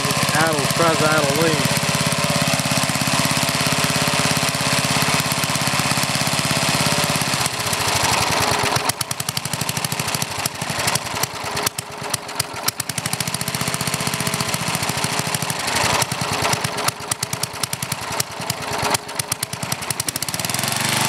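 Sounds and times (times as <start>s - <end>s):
small engine idling roughly: 0.0s - 21.0s.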